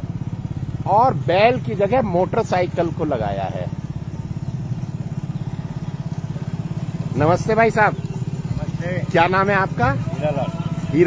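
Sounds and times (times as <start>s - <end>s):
motorcycle engine puttering: 0.0s - 11.0s.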